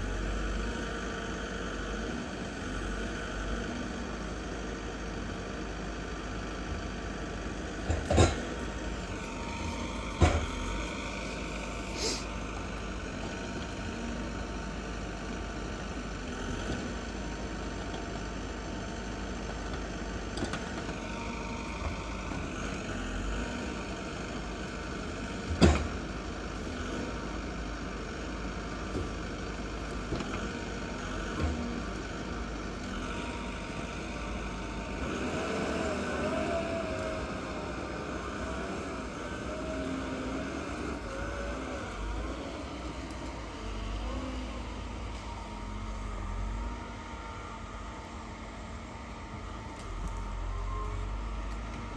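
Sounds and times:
engine hum: 0.0 - 51.9
hydraulic crane whine: 0.0 - 51.9.

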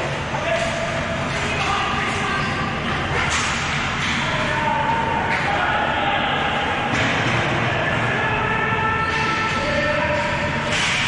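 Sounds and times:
hockey sticks slapping ball: 2.8 - 4.3.

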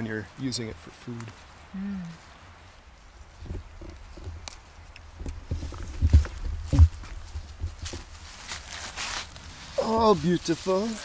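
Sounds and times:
low thumps: 5.2 - 8.2.

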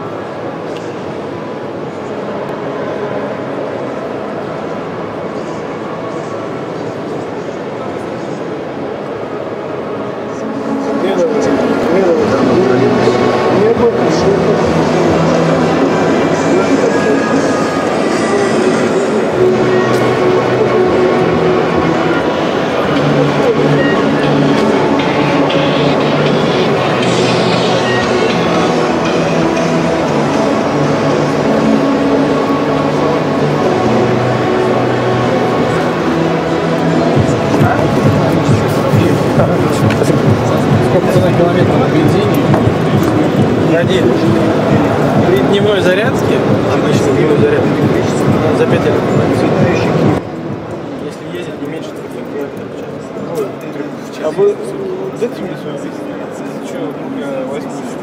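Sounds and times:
indistinct voices: 0.0 - 58.0
background music: 8.6 - 58.0.

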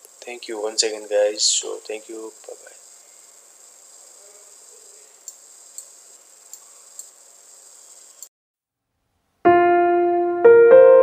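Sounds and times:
faint high-pitched hiss: 0.0 - 8.3.

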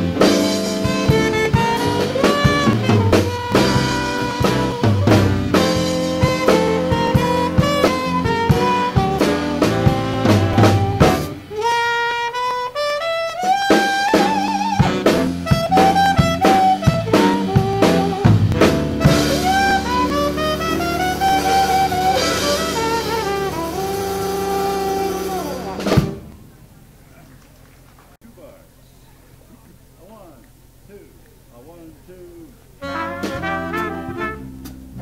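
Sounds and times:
drum hits: 0.0 - 11.8, 13.6 - 26.5, 33.0 - 35.0
jazz dance band playing swing: 0.0 - 35.0.

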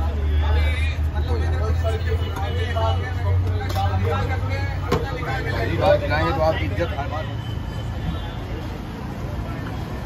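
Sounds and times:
indistinct voices chattering: 0.0 - 10.0.

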